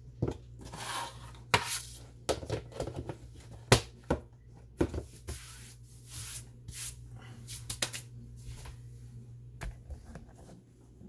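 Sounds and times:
steady low hum: 4.3s - 11.0s.

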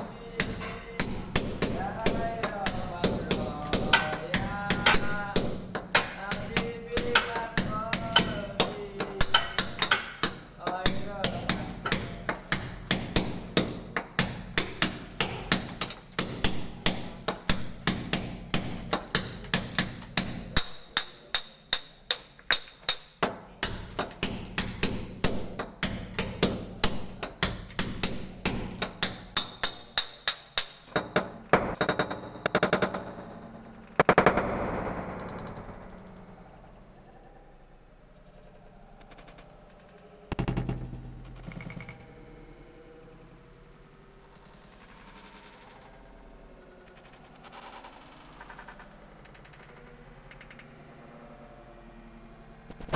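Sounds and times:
hammer and chisel chipping plaster: 0.3s - 34.4s.

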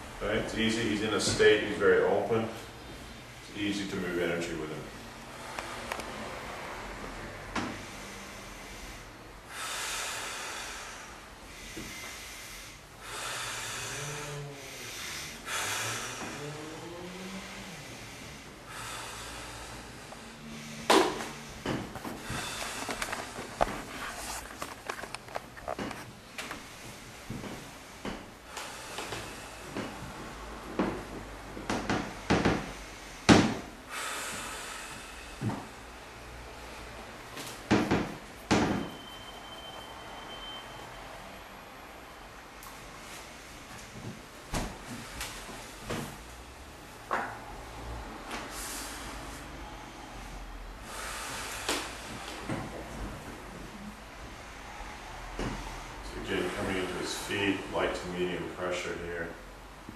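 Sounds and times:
man breathing heavily: 4.8s - 38.7s, 42.0s - 58.0s
man sighing or moaning: 13.7s - 18.1s.

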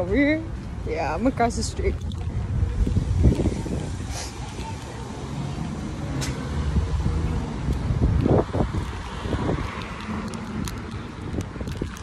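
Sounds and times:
faint street noise: 0.0s - 12.0s
wind buffeting microphone: 0.0s - 12.0s.

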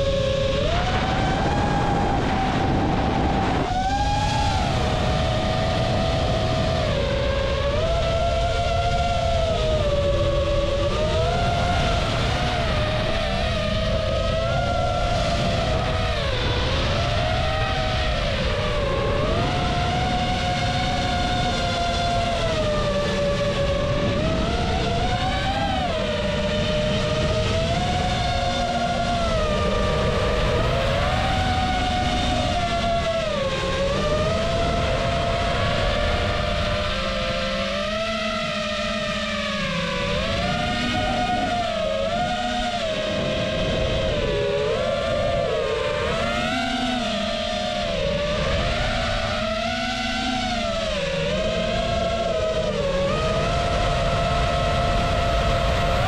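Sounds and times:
drone propellers whining: 0.0s - 56.0s.

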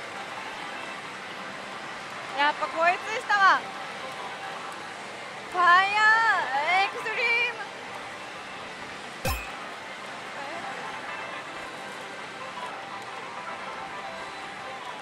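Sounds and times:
sharp knock: 9.3s - 9.6s
slot machine sounds: 9.3s - 9.8s
background music: 9.3s - 10.0s.

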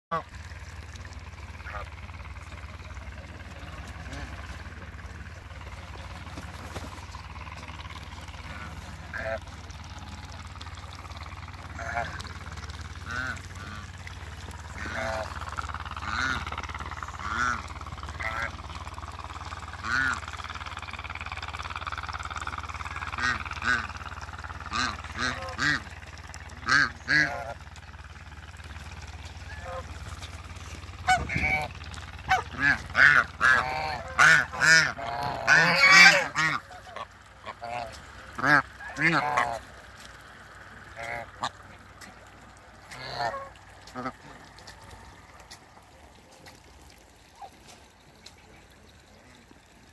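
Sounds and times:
geese honking: 0.1s - 46.2s
steady low hum: 0.1s - 49.9s.

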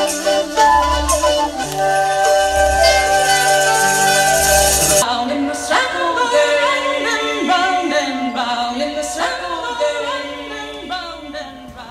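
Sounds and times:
voices singing in harmony: 0.0s - 11.9s.

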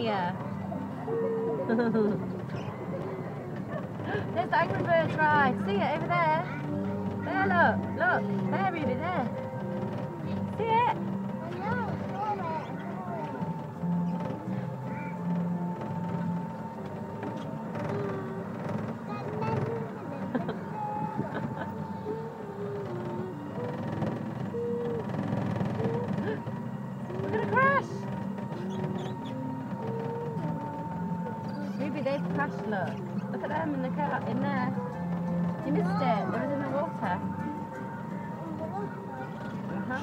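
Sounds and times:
background music: 0.0s - 40.0s
distant voices: 0.0s - 40.0s.

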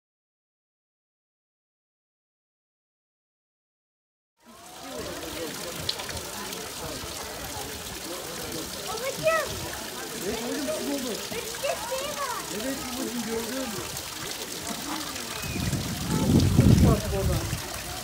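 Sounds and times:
people chattering: 4.4s - 18.0s
water rushing and trickling: 4.4s - 18.0s.

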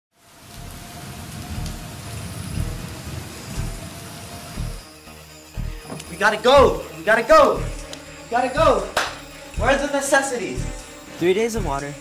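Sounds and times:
rain falling on leaves: 0.1s - 4.8s
deep low rumbles: 0.5s - 4.8s.

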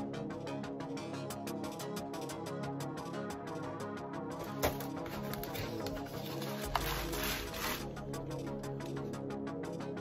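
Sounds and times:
background music: 0.0s - 10.0s
plastic bag crinkling: 4.4s - 8.0s.

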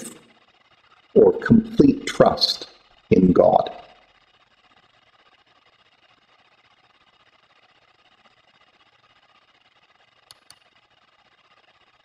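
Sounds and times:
quick faint clicks: 10.2s - 10.7s.

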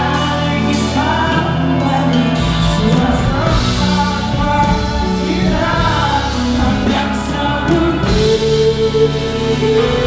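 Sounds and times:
live band music: 0.0s - 10.0s
man singing: 0.0s - 10.0s.

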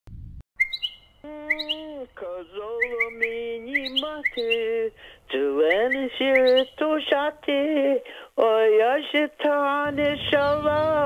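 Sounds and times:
small bird chirping: 0.6s - 4.8s, 5.5s - 6.9s
low rumble: 9.8s - 11.0s.

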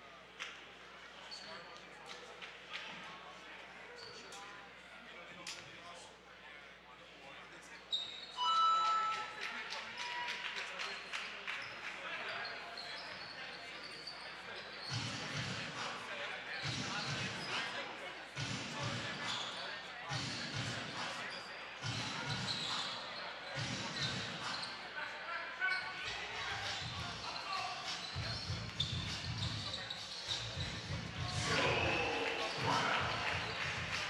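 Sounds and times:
indistinct voices echoing: 31.1s - 34.0s.

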